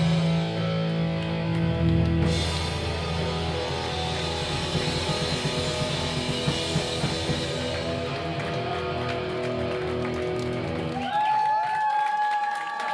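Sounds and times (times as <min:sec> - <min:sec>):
guitar chords ringing: 0:00.0 - 0:10.9
punk rock band playing: 0:00.0 - 0:11.2.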